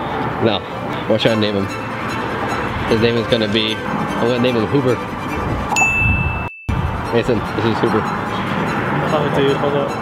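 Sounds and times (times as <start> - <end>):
wind noise on microphone: 5.0 - 9.4
high ding: 5.7 - 6.8.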